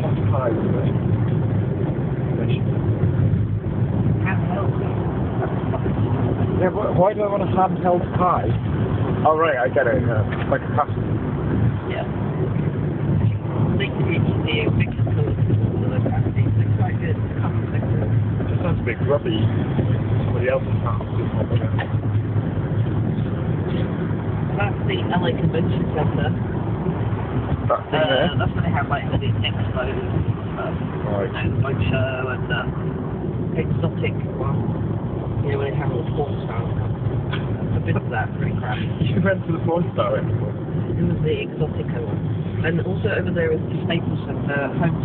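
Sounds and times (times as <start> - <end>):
car road and engine rumble: 0.0 - 45.0.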